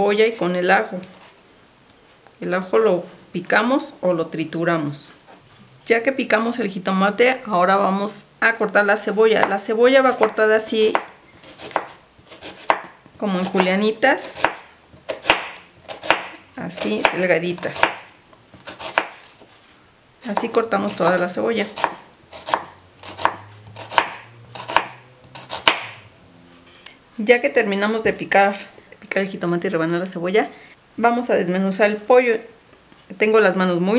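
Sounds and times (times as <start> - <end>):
knife slicing onion on board: 9.3 - 19.5, 20.3 - 26.0.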